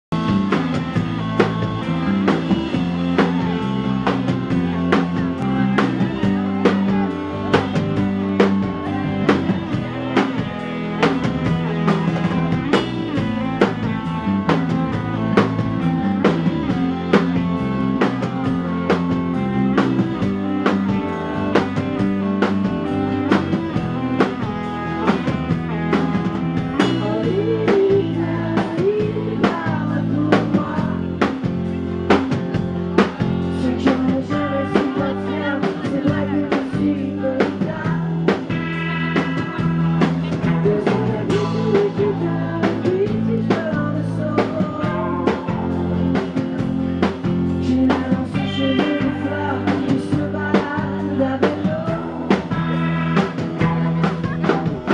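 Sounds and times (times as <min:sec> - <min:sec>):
electric guitar: 0:00.1 - 0:54.9
drum beat: 0:00.2 - 0:29.9, 0:30.5 - 0:54.9.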